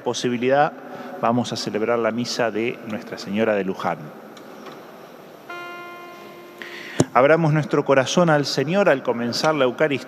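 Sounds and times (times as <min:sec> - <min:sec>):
instrument note ringing: 0:05.5 - 0:08.1.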